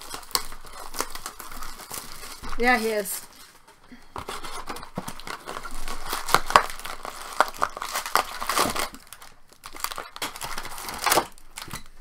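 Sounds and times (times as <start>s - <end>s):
plastic and foil packs crinkling: 0.0s - 12.0s
cardboard box tearing: 4.2s - 11.4s.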